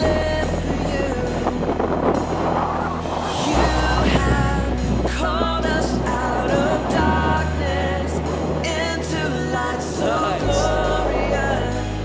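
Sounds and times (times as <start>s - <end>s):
music with bass and steady beat: 0.0s - 12.0s.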